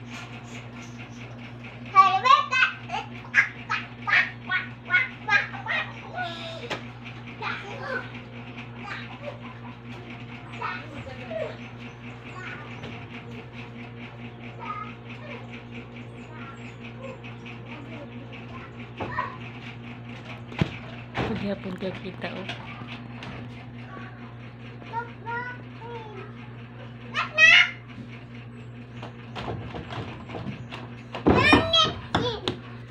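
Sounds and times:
steady low hum: 0.0 - 32.9
child making rhythmic vocal sounds: 31.4 - 32.6.

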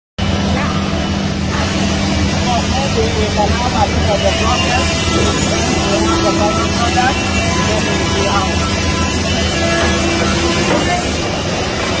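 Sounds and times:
woodworking machinery humming: 0.2 - 12.0
people talking: 2.3 - 12.0.

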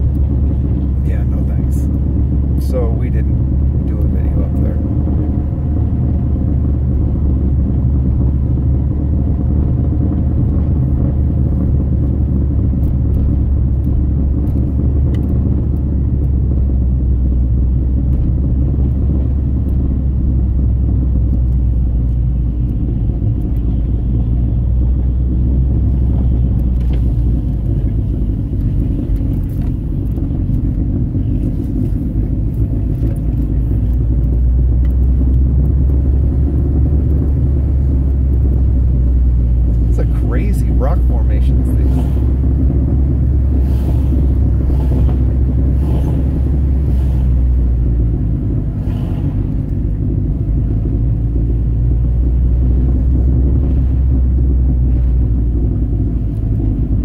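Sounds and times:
car engine low rumble: 0.0 - 57.0
tyre and road noise: 0.0 - 57.0.

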